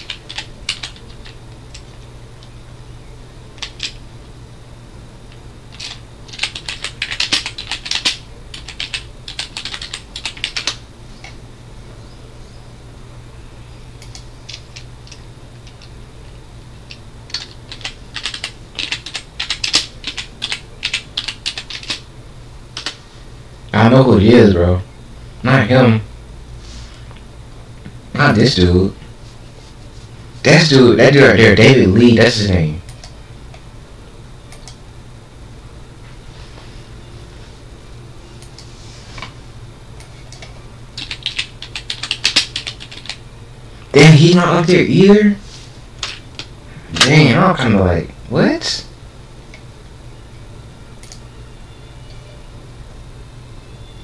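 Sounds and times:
computer keyboard typing: 0.0s - 2.5s, 3.6s - 4.0s, 5.3s - 11.4s, 14.0s - 15.9s, 16.9s - 22.0s, 22.7s - 23.0s, 34.5s - 34.8s, 40.0s - 43.2s, 51.0s - 51.2s
low steady hum: 0.0s - 54.0s.

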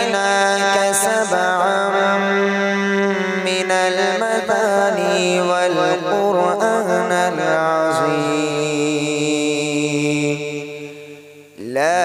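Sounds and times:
man reciting melodically into microphone: 0.0s - 12.0s.

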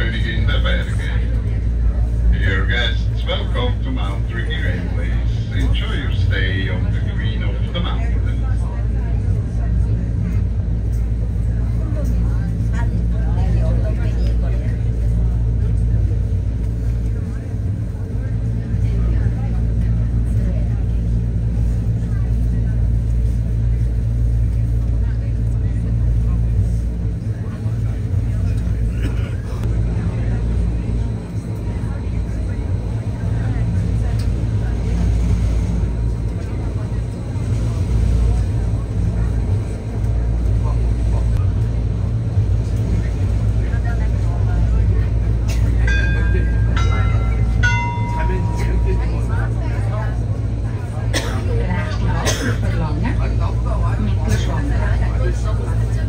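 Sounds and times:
vehicle ride rumble from cabin: 0.0s - 56.0s.

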